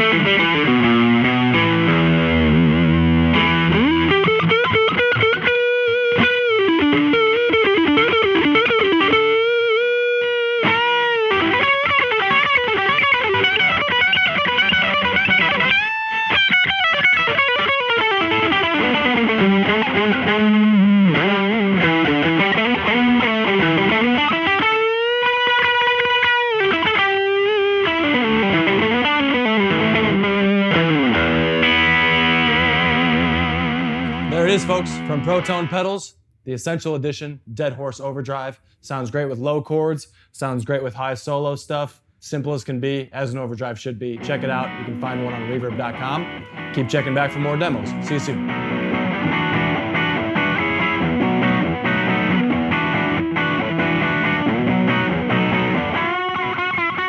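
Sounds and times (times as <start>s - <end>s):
overdriven electric guitar lead: 0.0s - 36.0s, 44.0s - 57.0s.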